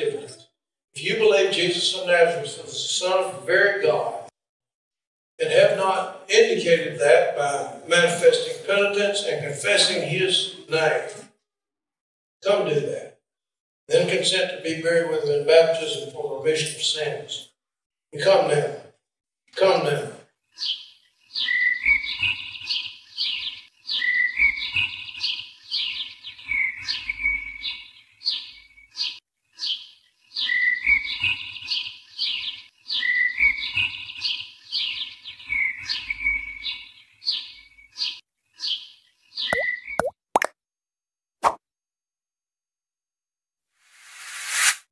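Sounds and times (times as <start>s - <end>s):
high plopping chirps: 39.4s - 40.5s
quick sweeping whooshes: 43.9s - 44.9s.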